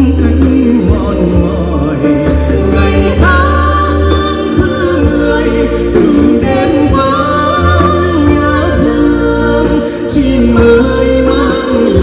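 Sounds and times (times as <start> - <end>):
man singing: 0.0 - 12.0
woman singing: 2.6 - 12.0.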